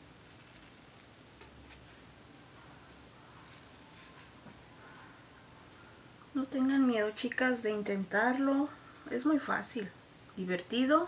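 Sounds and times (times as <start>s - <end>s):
scratchy rustling of hair: 0.0s - 5.0s.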